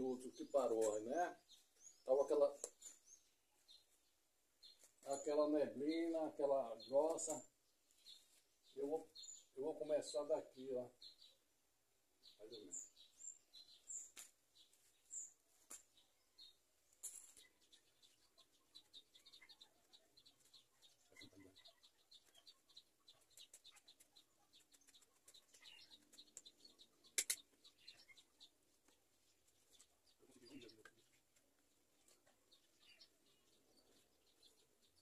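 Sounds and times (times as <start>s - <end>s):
sharp click: 27.2s - 27.4s.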